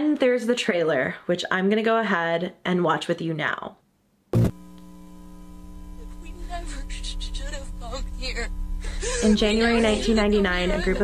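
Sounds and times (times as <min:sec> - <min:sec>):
steady electronic hum: 0:04.4 - 0:11.0.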